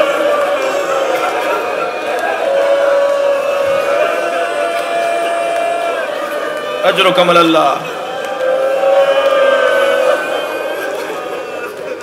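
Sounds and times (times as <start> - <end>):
people weeping aloud: 0.0 - 7.2, 7.8 - 12.0
long held wailing voice: 0.0 - 12.0.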